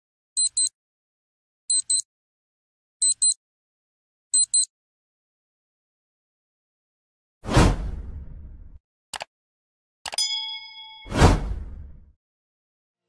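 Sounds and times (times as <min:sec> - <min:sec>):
whoosh: 0:07.4 - 0:08.8, 0:11.1 - 0:12.1
bell-like ding: 0:10.2 - 0:11.6.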